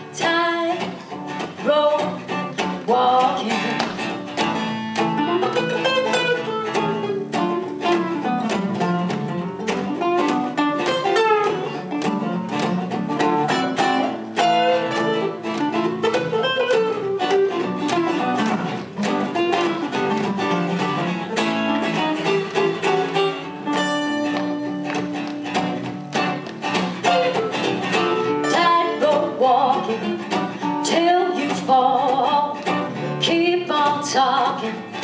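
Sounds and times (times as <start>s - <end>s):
acoustic guitars playing country: 0.0s - 35.0s.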